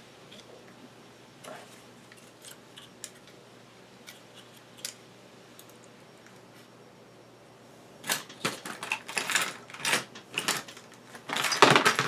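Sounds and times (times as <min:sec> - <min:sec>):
clatter of parts: 0:08.0 - 0:12.0.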